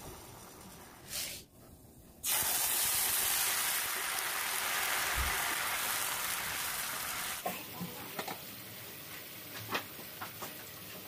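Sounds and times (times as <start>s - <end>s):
syrup hissing in hot pan: 2.2s - 7.4s.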